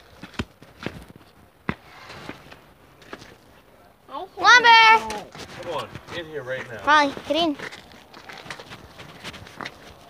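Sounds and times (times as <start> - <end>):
footsteps: 0.0 - 3.7, 4.4 - 10.0.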